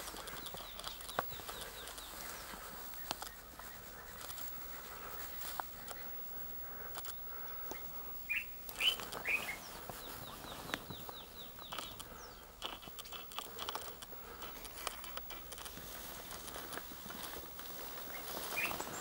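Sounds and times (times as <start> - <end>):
faint clicks: 0.0 - 2.2, 2.9 - 3.4, 6.8 - 7.9, 8.6 - 10.0, 10.7 - 17.7
birds chirping: 0.0 - 19.0.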